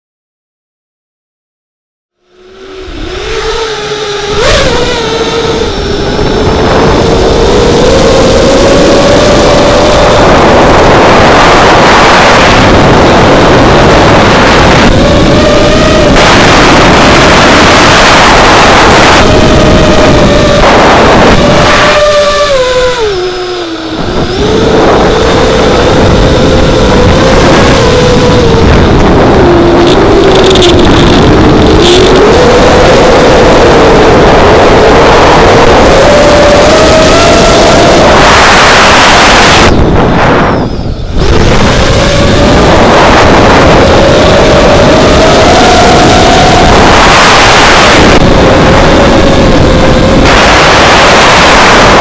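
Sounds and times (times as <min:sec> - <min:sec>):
quadcopter motors whining: 0:02.2 - 0:52.0
rush of wind: 0:02.2 - 0:52.0.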